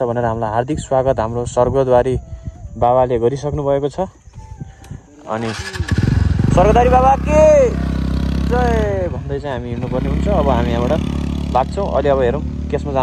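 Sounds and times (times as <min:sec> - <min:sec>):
motorcycle engine idling: 0:04.4 - 0:13.0
person talking: 0:06.5 - 0:11.0.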